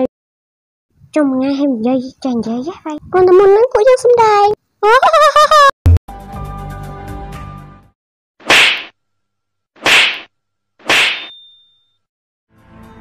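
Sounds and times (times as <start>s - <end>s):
sharp swishing hits: 8.4s - 8.9s, 9.8s - 11.4s
faint thin ringing tone: 11.3s - 12.1s.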